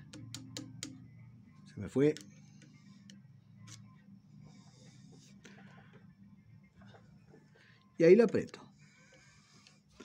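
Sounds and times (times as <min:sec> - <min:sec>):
steel tool tapping metal: 0:00.0 - 0:01.0.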